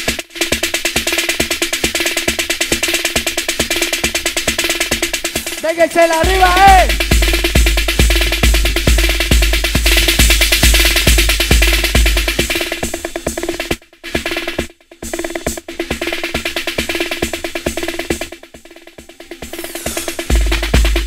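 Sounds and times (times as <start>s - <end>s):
kick drum: 0.0s - 19.2s, 20.2s - 21.0s
electronic dance music: 5.2s - 11.2s, 18.1s - 21.0s
clicking percussion: 17.2s - 21.0s.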